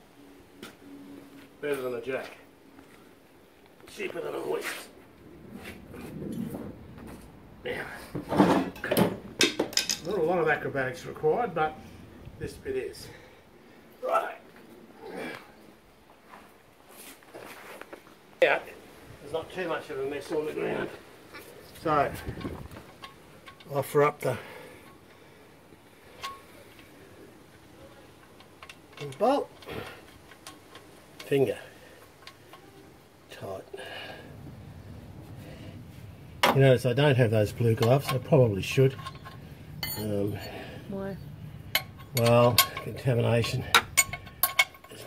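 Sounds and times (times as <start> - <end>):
rustling and shuffling: 0.5 - 9.3, 14.4 - 23.6.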